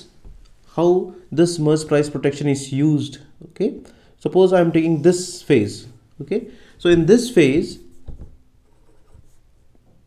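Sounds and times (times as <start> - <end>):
marker pen rubbing on whiteboard: 7.8 - 9.6.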